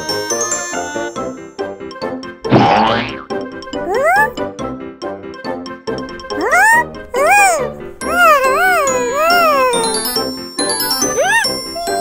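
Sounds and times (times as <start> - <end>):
cartoon background music: 0.0 - 12.0
cartoon sound effect: 2.5 - 3.3.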